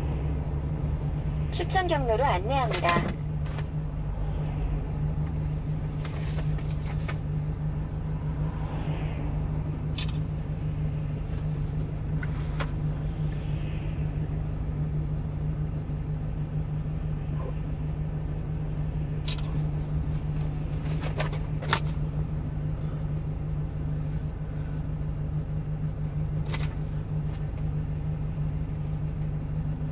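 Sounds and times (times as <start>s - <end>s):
truck engine idling: 0.0s - 8.5s, 9.6s - 29.9s.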